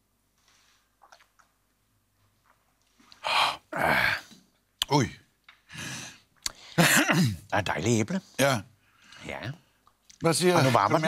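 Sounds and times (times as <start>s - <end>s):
men exhaling loudly: 3.2s - 4.4s
man voicing a grunt: 3.3s - 4.3s.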